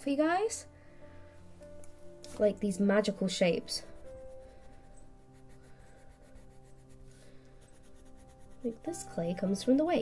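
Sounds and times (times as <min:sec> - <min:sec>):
pencil scratching on paper: 0:03.8 - 0:09.2.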